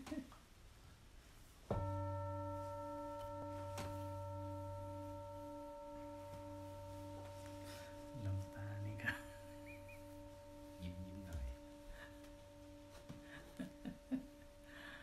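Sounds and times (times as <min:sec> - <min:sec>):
singing bowl ringing: 0:01.7 - 0:15.0.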